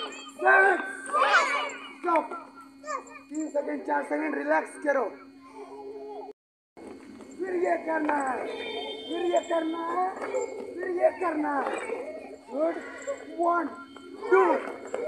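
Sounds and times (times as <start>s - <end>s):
children chattering and calling out: 0.0s - 6.4s, 8.4s - 15.0s
steady low hum: 0.0s - 15.0s.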